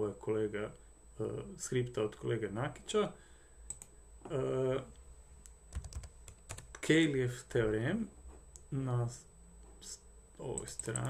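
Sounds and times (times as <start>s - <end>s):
computer keyboard key presses: 5.7s - 6.8s.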